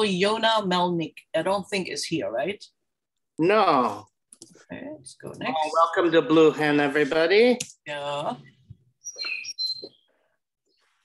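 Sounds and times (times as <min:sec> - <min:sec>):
bird chirping: 0:08.4 - 0:11.0.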